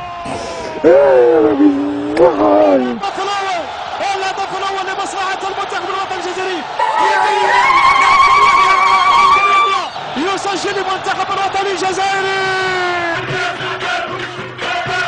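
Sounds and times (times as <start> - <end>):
voices shouting in celebration: 2.2 - 14.0
long wavering high cry: 6.8 - 9.9.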